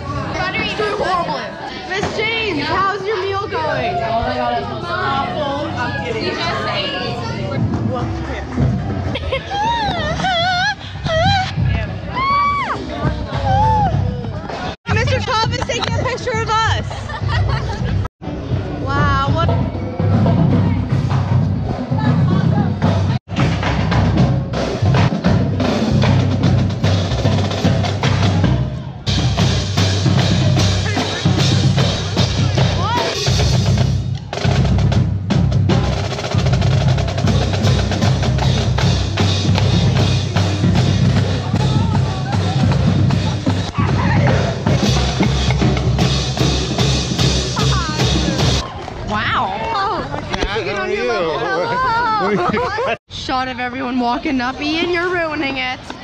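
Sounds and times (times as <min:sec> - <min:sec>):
crowd chatter: 0:00.0 - 0:56.0
drumline playing: 0:00.1 - 0:50.4.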